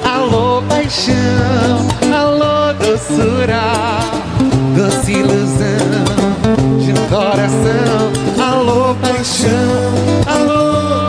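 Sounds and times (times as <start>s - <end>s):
acoustic guitar: 0.0s - 11.0s
man singing into microphone: 0.0s - 11.0s
steady bass line: 0.0s - 11.0s.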